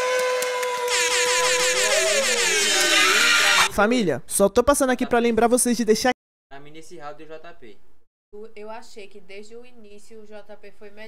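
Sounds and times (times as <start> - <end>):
air horn long note: 0.0 - 3.7.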